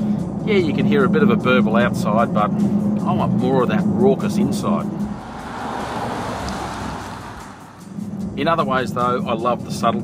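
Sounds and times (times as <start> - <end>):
car driving past at speed: 4.8 - 8.3.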